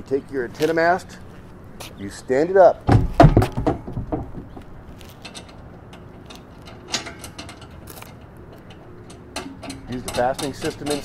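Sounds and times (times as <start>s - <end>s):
antenna mast thumping into base: 2.8s - 5.5s.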